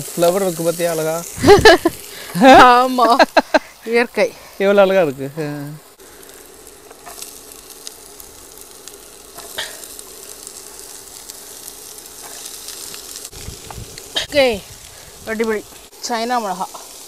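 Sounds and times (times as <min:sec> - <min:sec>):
vegetables sizzling in a pan: 0:00.0 - 0:17.0.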